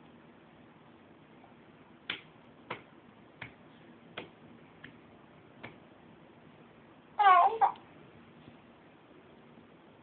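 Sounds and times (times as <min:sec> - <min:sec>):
hand slapping plastic basket: 0:02.0 - 0:05.0, 0:05.6 - 0:05.8.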